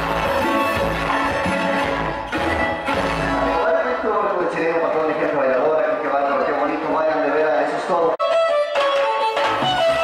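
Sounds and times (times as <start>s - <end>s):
live dance band music: 0.0s - 5.4s, 8.2s - 10.0s.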